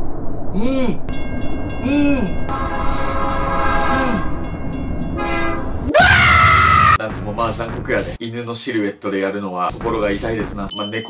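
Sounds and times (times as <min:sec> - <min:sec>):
train rumbling on rails: 0:00.0 - 0:05.9
train horn blowing: 0:02.5 - 0:04.4, 0:05.1 - 0:05.9.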